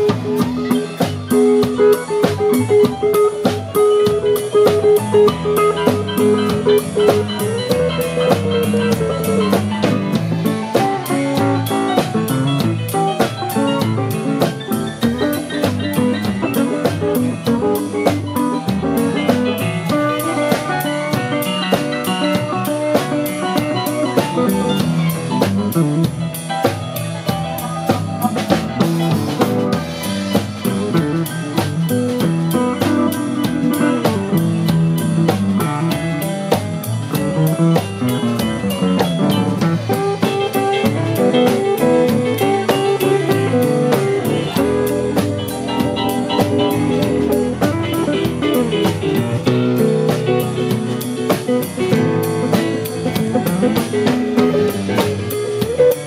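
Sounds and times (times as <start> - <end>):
drum kit beat: 0.0 - 56.0
guitar: 0.0 - 56.0
keyboard: 0.0 - 56.0
upright double bass: 0.0 - 56.0.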